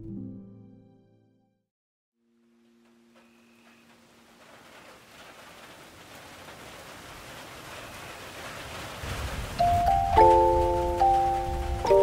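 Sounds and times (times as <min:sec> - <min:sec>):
rushing rain-like hiss: 0:02.7 - 0:12.0
mallet percussion melody: 0:09.6 - 0:12.0.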